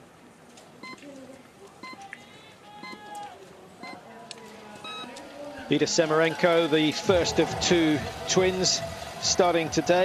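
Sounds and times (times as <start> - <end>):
high countdown beeps: 4.8 - 5.1.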